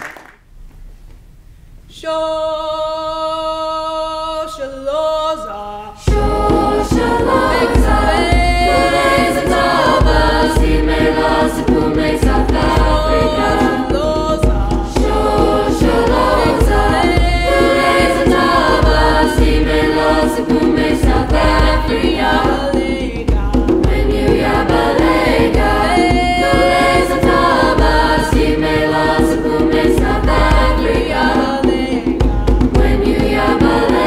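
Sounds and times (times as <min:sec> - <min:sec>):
choir singing: 0:02.0 - 0:34.0
hand drum beating: 0:06.1 - 0:34.0.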